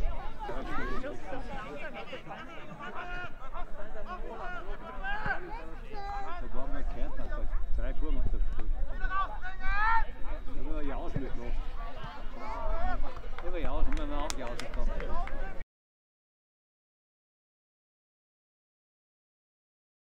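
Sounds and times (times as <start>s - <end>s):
voices shouting across a pitch: 0.0s - 7.7s, 8.7s - 13.4s.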